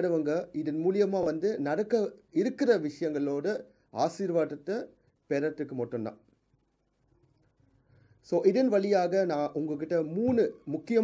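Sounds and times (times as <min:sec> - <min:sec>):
man speaking: 0:00.0 - 0:06.3, 0:08.2 - 0:11.0.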